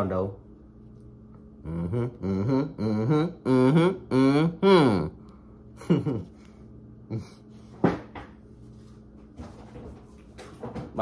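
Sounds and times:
low steady hum: 0.0s - 11.0s
man spitting: 1.6s - 5.2s.

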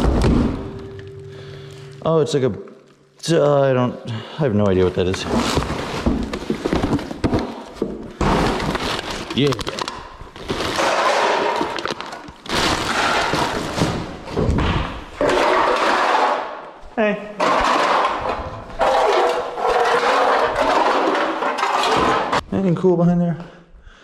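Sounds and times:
plastic garbage bags rustling: 4.8s - 14.4s.

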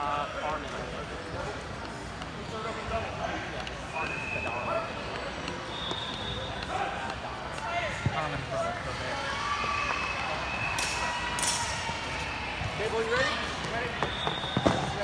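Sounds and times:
murmur of voices: 0.0s - 15.0s.

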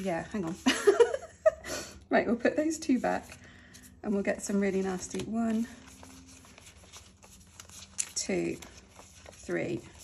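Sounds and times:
banknotes rustling: 0.0s - 1.3s, 2.9s - 10.0s.

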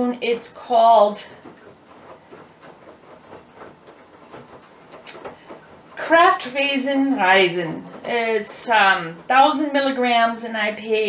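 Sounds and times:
small clicks and taps: 1.2s - 10.0s.

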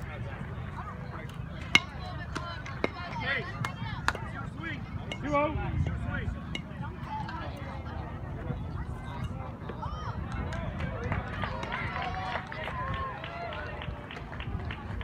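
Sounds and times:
spectator chatter: 0.0s - 15.0s.

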